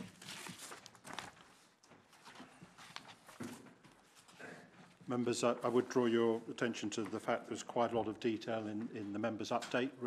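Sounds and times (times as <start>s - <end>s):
paper rustling: 0.0s - 4.4s.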